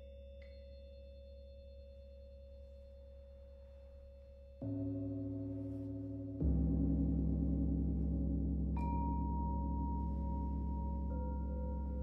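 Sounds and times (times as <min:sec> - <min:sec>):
singing bowl ringing: 0:08.8 - 0:12.0.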